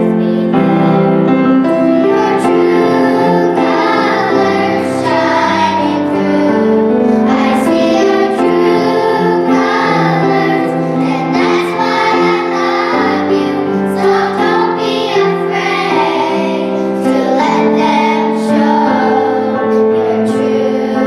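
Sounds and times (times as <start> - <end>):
girls singing pop song: 2.0 - 21.0.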